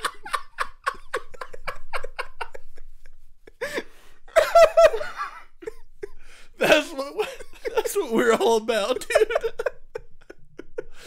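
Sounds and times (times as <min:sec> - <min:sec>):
people laughing: 0:00.0 - 0:11.0.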